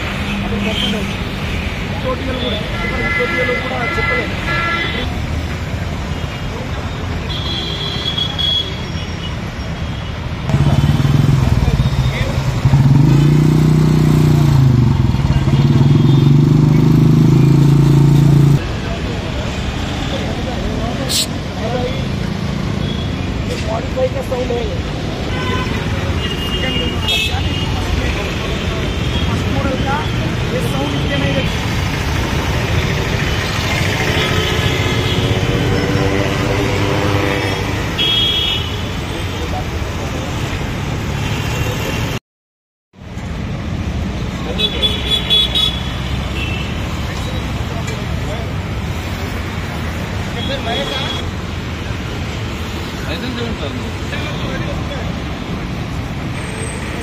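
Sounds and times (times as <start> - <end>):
street traffic noise: 0.0 - 42.2, 42.9 - 57.0
people talking: 18.6 - 22.1, 53.0 - 55.2.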